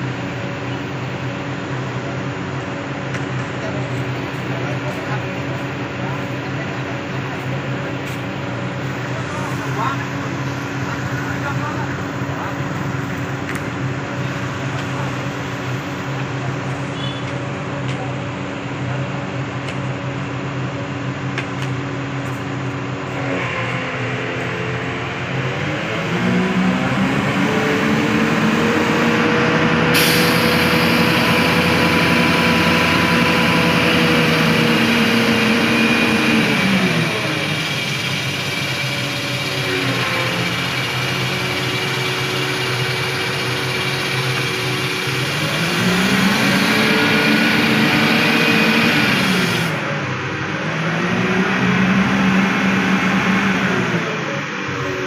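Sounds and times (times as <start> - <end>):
diesel engine revving: 0.0 - 55.0.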